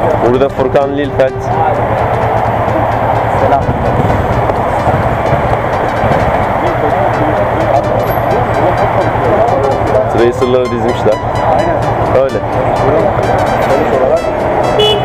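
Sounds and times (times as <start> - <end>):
engines and traffic din: 0.0 - 15.0
indistinct voices: 0.0 - 15.0.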